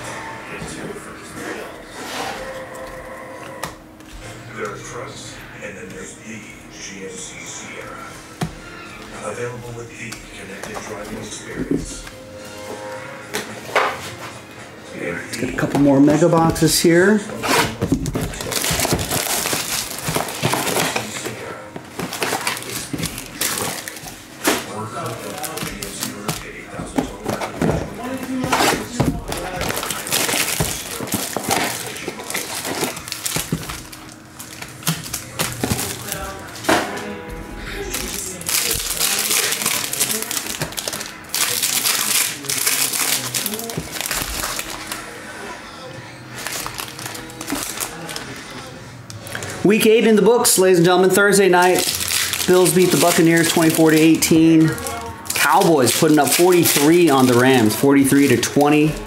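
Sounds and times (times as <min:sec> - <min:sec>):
background music: 0:00.0 - 0:59.0
plastic wrappers crinkling: 0:15.4 - 0:36.7, 0:37.7 - 0:45.2, 0:46.3 - 0:59.0.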